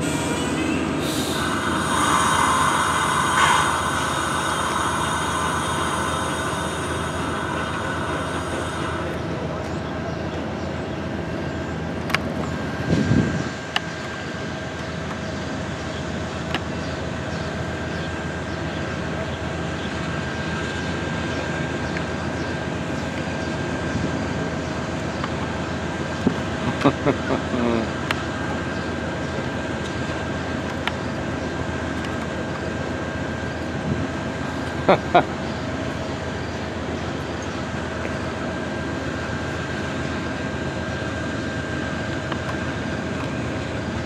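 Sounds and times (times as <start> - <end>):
idling train hum: 0.0 - 44.0.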